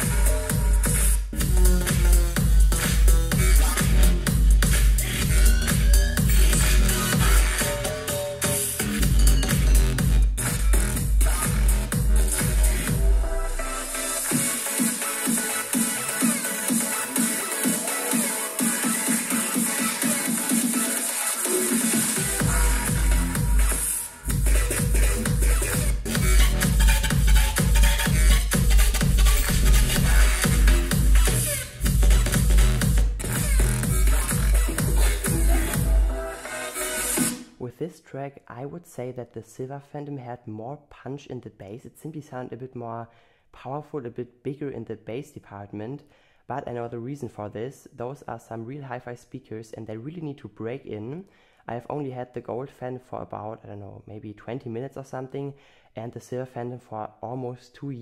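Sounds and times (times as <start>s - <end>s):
electronic dance music: 0.0s - 37.6s.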